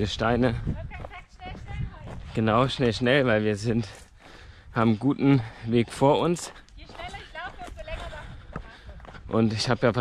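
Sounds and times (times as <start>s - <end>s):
footsteps on stony trail: 0.0s - 10.0s.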